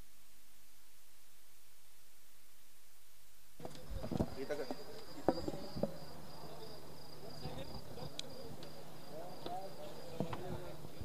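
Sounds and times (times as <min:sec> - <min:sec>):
crickets chirring: 0:03.6 - 0:11.0
distant voices: 0:03.6 - 0:11.0.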